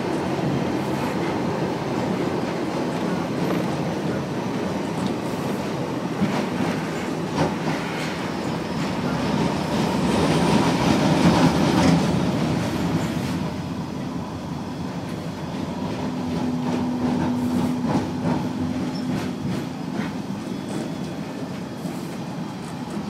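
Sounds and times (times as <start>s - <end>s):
tram rolling noise: 0.0s - 23.0s.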